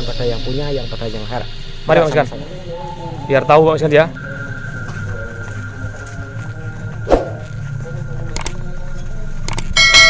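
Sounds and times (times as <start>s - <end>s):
steady low hum: 0.0s - 9.9s.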